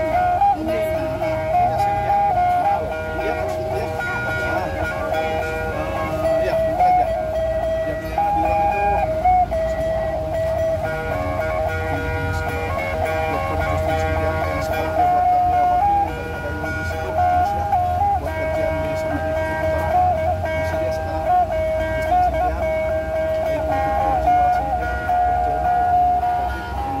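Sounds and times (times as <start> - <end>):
plucked lutes playing a fast tune: 0.0 - 27.0.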